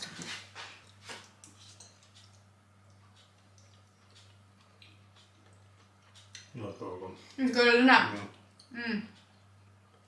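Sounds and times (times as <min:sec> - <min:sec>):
cutlery scraping bowls: 0:00.0 - 0:02.4
low electrical hum: 0:00.0 - 0:10.0.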